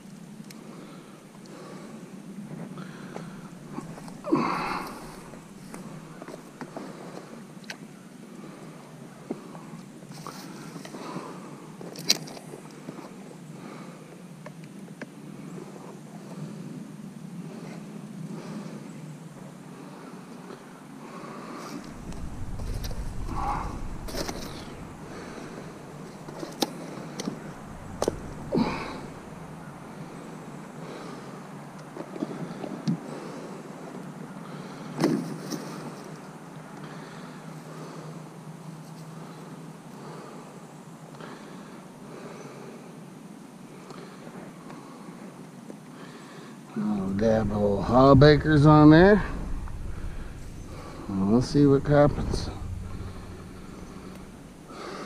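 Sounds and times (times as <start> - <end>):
rustling of sticks and brush: 2.4 - 7.4, 21.6 - 30.7
low rumble: 3.4 - 6.2, 21.8 - 30.7, 46.8 - 55.0.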